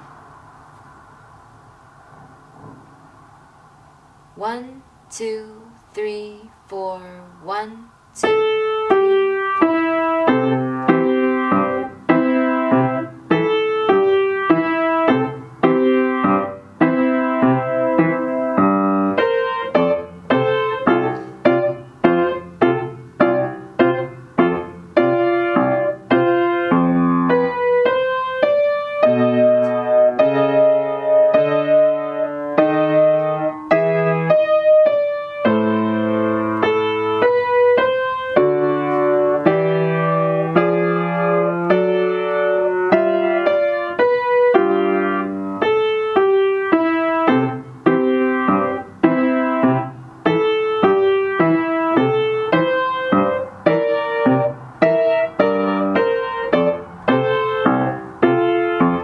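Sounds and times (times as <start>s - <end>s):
piano melody over chords: 8.2s - 59.0s.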